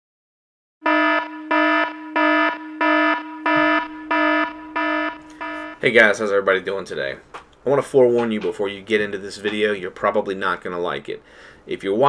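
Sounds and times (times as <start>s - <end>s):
pulsing buzzing alarm tone: 0.8s - 5.8s.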